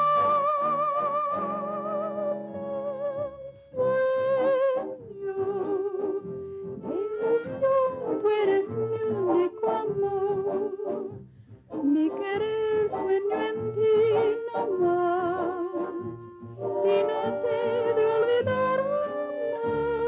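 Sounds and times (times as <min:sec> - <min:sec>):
woman singing slow melody: 0:00.0 - 0:11.0, 0:11.8 - 0:16.1, 0:16.8 - 0:20.0.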